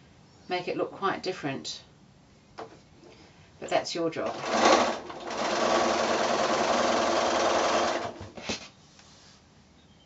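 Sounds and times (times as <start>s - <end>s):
electric sewing machine stitching: 4.2s - 8.3s.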